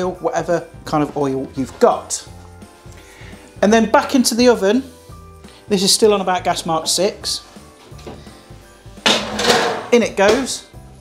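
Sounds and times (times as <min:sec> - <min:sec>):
quiet background music: 0:00.0 - 0:11.0
metal tin clattering and scraping: 0:09.1 - 0:10.0.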